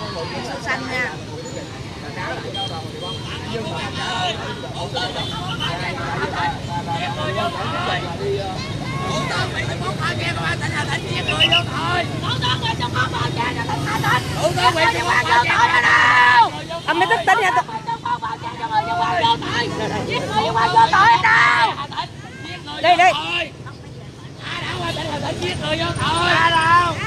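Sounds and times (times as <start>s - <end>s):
crowd talking: 0.0s - 27.0s.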